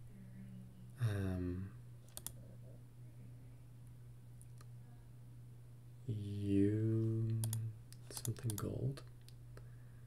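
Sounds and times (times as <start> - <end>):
steady low hum: 0.0 - 10.0
person murmuring: 1.0 - 1.8
computer mouse clicks: 2.0 - 2.4, 7.4 - 9.4.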